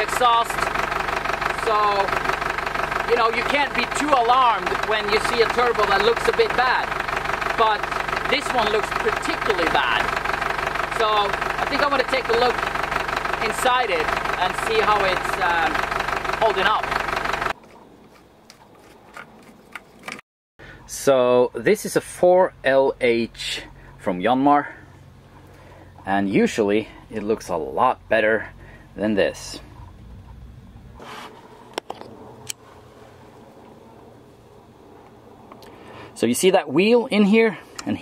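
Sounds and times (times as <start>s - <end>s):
diesel engine running: 0.0s - 17.6s, 22.0s - 36.2s.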